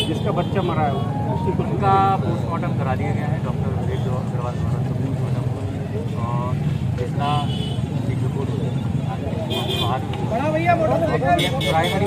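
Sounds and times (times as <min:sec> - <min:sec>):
people talking: 0:00.0 - 0:07.4.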